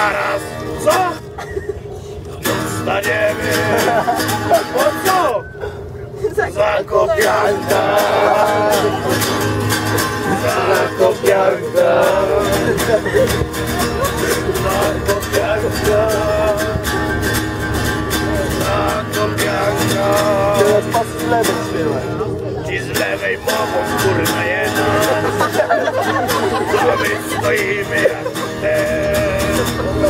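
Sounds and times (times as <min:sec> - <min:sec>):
people singing: 0:00.0 - 0:01.0, 0:02.4 - 0:05.1, 0:06.3 - 0:30.0
acoustic guitar strumming: 0:00.0 - 0:30.0.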